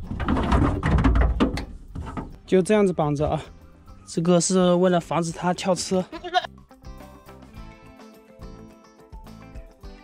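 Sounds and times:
background music: 1.6 - 10.0
goat bleating: 6.0 - 6.5.

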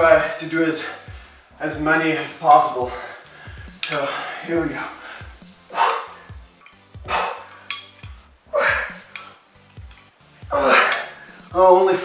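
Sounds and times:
instrumental music with deep beat: 2.6 - 12.0
man's strained exhalations: 5.2 - 7.7.

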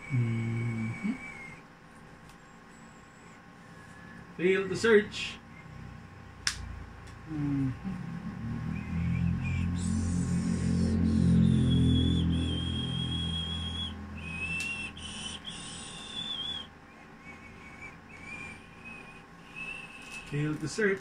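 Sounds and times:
low hum: 0.0 - 4.4, 5.3 - 20.4
high whistling notes: 8.3 - 20.4.

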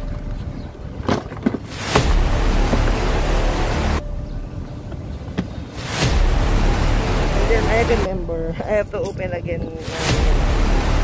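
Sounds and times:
wind buffeting microphone: 7.4 - 10.8.

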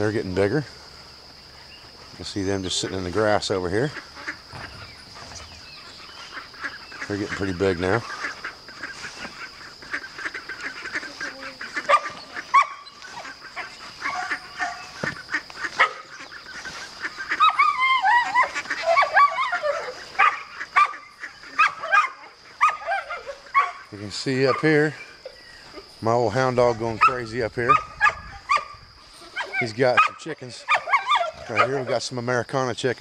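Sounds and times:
ducklings quacking and peeping: 0.0 - 32.4.

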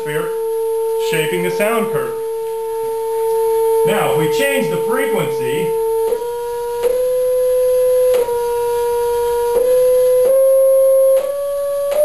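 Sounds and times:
test tone stepping in pitch: 0.0 - 12.0.

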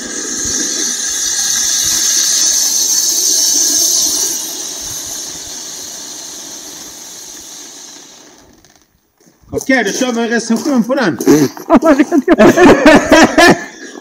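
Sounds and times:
firework fountain spraying sparks: 0.0 - 10.8, 11.5 - 14.0.

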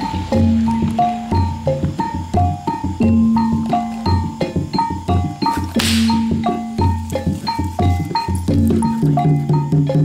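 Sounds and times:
gamelan struck metallic notes: 0.0 - 7.4.

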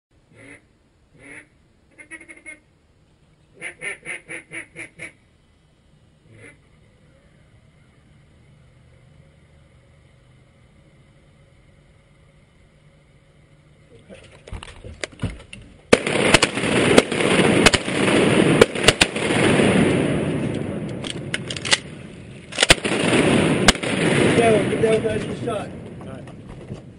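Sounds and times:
duck quacking: 0.3 - 2.7, 3.5 - 5.2, 6.2 - 6.7.

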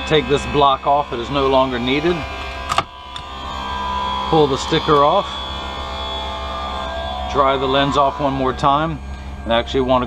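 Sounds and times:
lens edger machine humming: 0.0 - 10.0.

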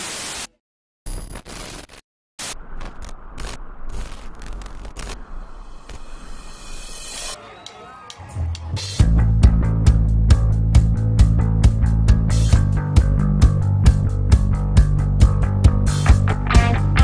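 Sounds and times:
crackling noise: 0.0 - 7.3
static hiss: 1.3 - 6.8.

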